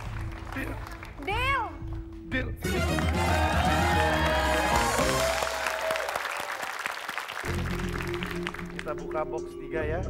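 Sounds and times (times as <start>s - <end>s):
audience applauding: 0.0s - 1.5s, 2.6s - 9.2s.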